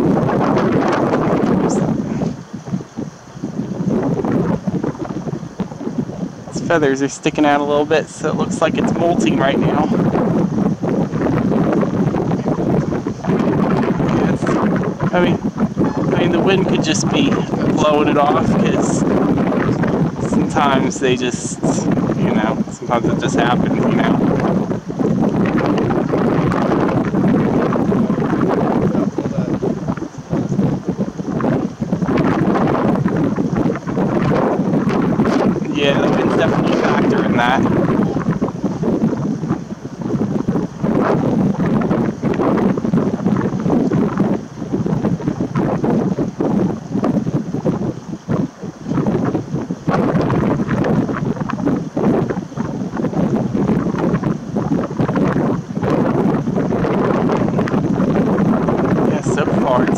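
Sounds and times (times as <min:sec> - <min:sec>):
gusty wind buffeting microphone: 0:00.0 - 0:59.9.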